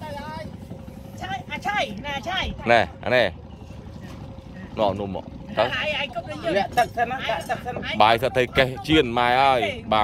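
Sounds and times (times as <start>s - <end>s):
idling boat engine: 0.0s - 10.0s.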